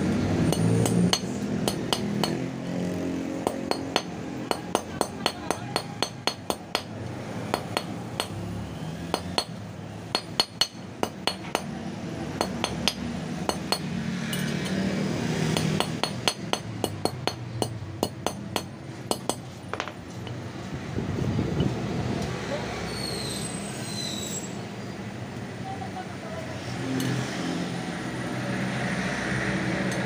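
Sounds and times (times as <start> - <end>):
hammer tapping metal: 0.4 - 2.5, 3.4 - 8.4, 9.1 - 14.8, 15.5 - 20.4.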